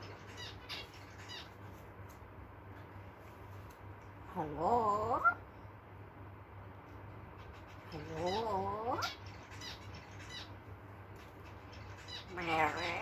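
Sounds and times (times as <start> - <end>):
parrot calling: 0.0 - 1.6, 4.3 - 5.5, 7.3 - 10.6, 11.4 - 13.0.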